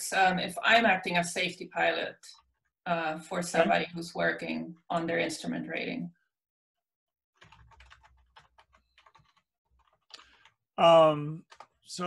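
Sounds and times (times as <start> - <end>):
computer keyboard typing: 2.4 - 2.8, 7.4 - 10.6, 11.4 - 11.8.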